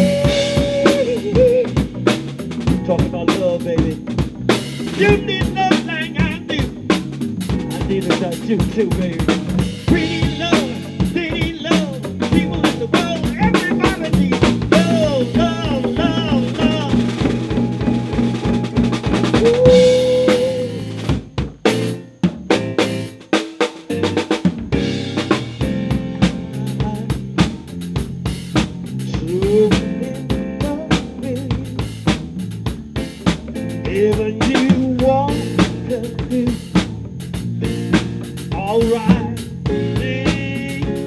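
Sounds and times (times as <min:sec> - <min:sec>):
drum kit with rimshots: 0:00.0 - 0:41.0
live band playing: 0:00.0 - 0:41.0
sliding lead melody: 0:00.0 - 0:41.0.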